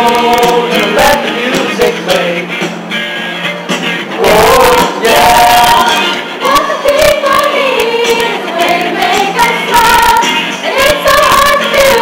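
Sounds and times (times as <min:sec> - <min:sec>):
children's choir singing pop: 0:00.0 - 0:02.4, 0:04.2 - 0:12.0.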